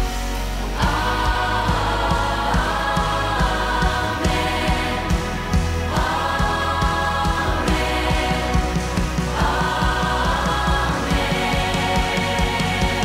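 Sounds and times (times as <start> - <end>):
steady low beat: 0.0 - 13.0
worship band playing: 0.4 - 13.0
children's choir singing: 0.7 - 13.0.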